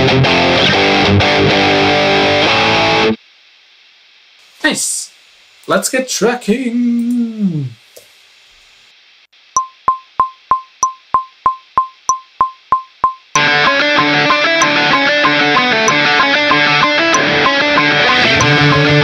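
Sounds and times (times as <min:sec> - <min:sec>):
distorted electric guitar: 0:00.0 - 0:03.2, 0:13.3 - 0:19.0
pop punk backing track: 0:00.0 - 0:03.2, 0:12.4 - 0:19.0
metronome clicks: 0:09.6 - 0:19.0.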